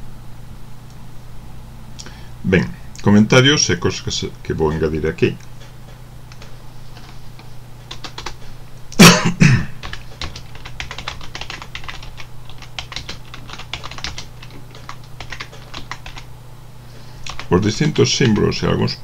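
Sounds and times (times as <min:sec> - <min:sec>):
low steady hum: 0:00.0 - 0:19.0
typing on computer keyboard: 0:07.9 - 0:08.4, 0:09.8 - 0:16.3, 0:17.3 - 0:18.6.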